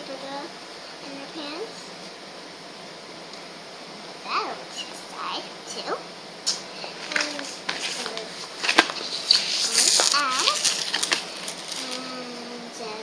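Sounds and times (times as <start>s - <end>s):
girl making wordless sounds: 0.0s - 1.9s, 4.2s - 8.4s, 9.7s - 10.7s, 11.7s - 13.0s
packaging clicking and rustling: 7.0s - 12.0s
girl humming: 11.8s - 12.8s.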